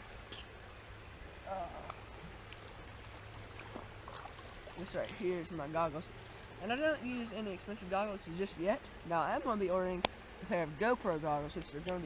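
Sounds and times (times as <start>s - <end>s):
creek water rushing over rocks: 0.0s - 12.0s.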